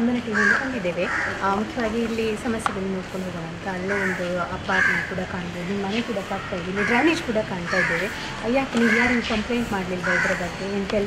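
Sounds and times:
people talking: 0.0s - 11.0s
crow cawing: 0.2s - 1.6s, 3.8s - 10.8s.

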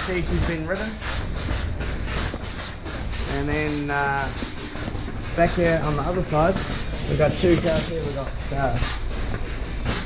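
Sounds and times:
milking machine rumble: 0.0s - 10.0s.

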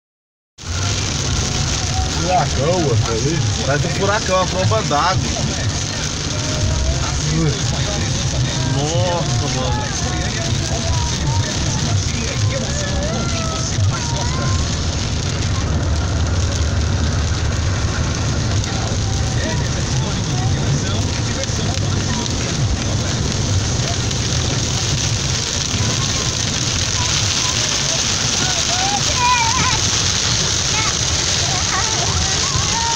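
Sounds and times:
rain on windshield and roof: 0.6s - 32.9s
road and engine rumble: 0.6s - 32.9s.

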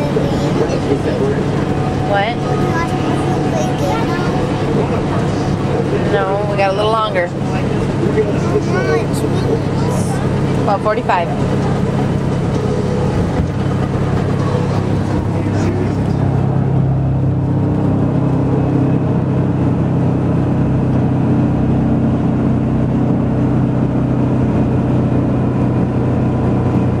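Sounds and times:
bus engine drone: 0.0s - 27.0s
road noise inside cabin: 0.0s - 27.0s.

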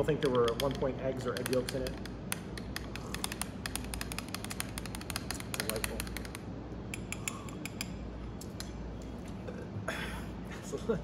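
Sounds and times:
quick irregular clicks: 0.2s - 8.7s.

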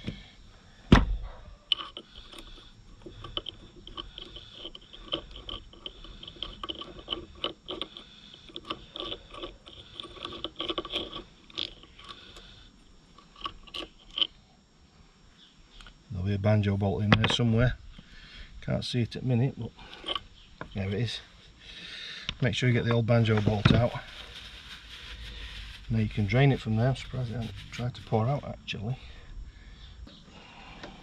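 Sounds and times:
small metal clicks and scrapes: 1.7s - 14.4s, 19.8s - 21.0s.

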